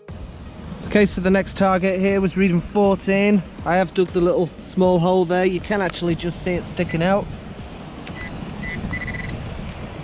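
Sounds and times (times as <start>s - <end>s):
metal detector beeps: 6.8s - 7.0s, 8.1s - 9.5s.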